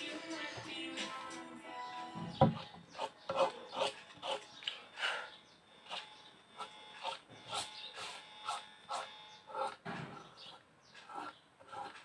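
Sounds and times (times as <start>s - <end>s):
paintbrush scraping paint on paper: 2.5s - 4.8s, 5.8s - 12.0s.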